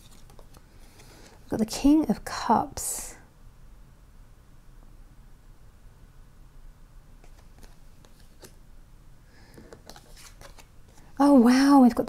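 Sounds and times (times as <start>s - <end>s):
low room hum: 0.0s - 12.0s
cards clicking and sliding: 7.2s - 8.6s, 9.5s - 11.1s.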